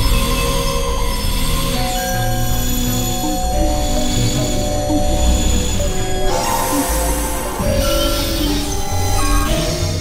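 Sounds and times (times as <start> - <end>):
synthesizer drone: 2.9 - 9.7.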